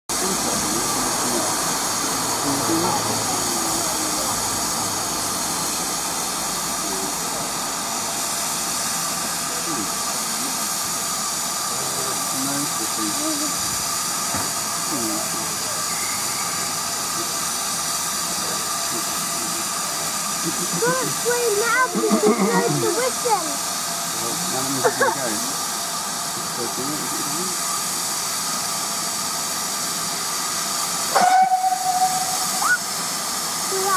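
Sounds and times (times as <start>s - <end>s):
steam hissing from locomotive: 0.1s - 33.9s.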